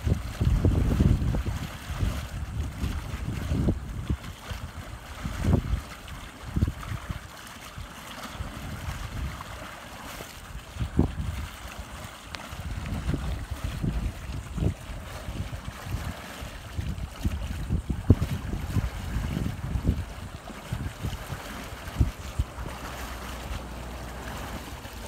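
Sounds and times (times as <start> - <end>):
wind buffeting microphone: 0.0 - 9.8, 10.4 - 25.0
faint water wash: 0.0 - 25.0.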